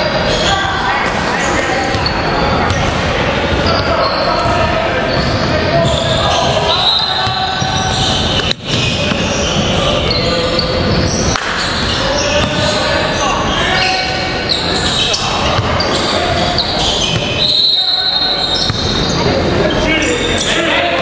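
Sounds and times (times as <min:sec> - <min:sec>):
players' voices and shouts: 0:00.0 - 0:21.0
shoe squeaks on court: 0:01.4 - 0:02.9, 0:03.6 - 0:20.6
basketball bouncing: 0:07.2 - 0:09.7, 0:12.2 - 0:12.8, 0:15.4 - 0:16.0, 0:17.0 - 0:17.4, 0:18.5 - 0:19.2.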